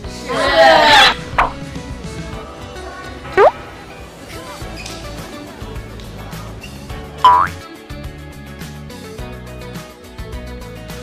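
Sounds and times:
background music with steady beat: 0:00.0 - 0:11.0
comic boing sound effect: 0:03.4 - 0:03.6, 0:07.3 - 0:07.6.

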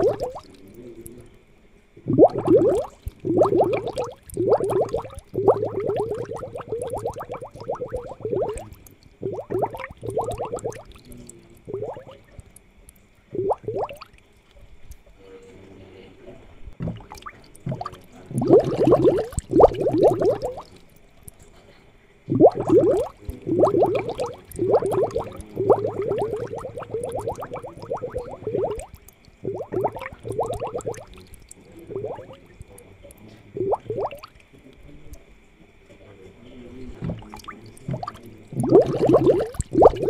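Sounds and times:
aquarium air bubbles gurgling: 0:00.0 - 0:15.2, 0:16.6 - 0:21.5, 0:22.2 - 0:35.2, 0:36.4 - 0:40.0.

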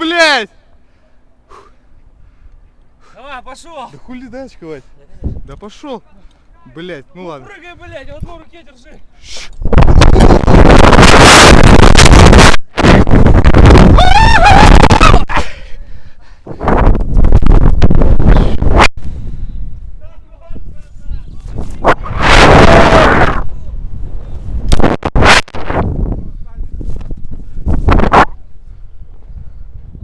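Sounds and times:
wind roar on microphone: 0:09.6 - 0:15.4, 0:16.4 - 0:30.0
person yelling: 0:13.9 - 0:15.4.

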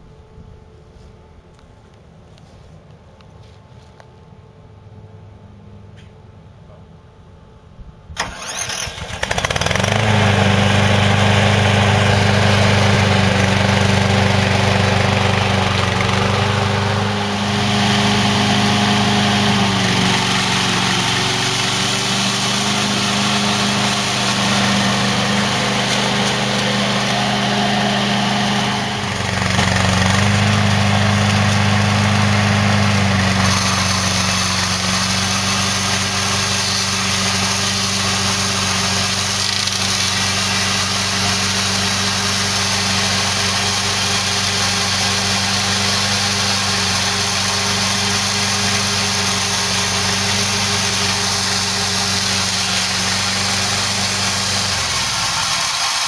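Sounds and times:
small gas engine running: 0:08.2 - 0:56.0
trimmer heads cutting: 0:08.2 - 0:56.0.

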